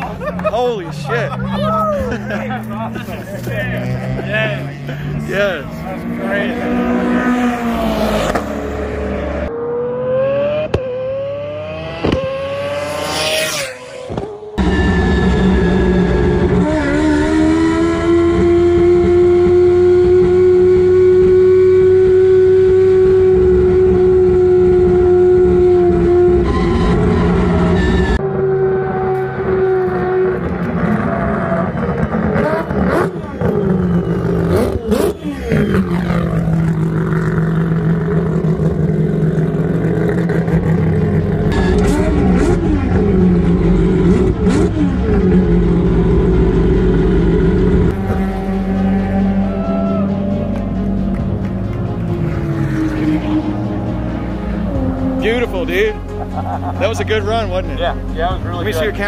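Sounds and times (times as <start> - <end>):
race car passing by: 2.0 - 19.8, 47.8 - 56.0.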